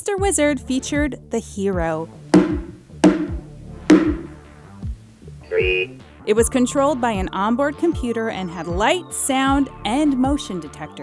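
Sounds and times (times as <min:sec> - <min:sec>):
spoon knocking on metal pot: 0:02.4 - 0:04.4.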